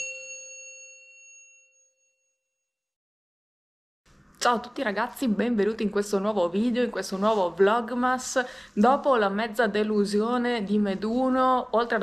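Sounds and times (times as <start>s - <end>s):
bright bell-like chime: 0.0s - 2.8s.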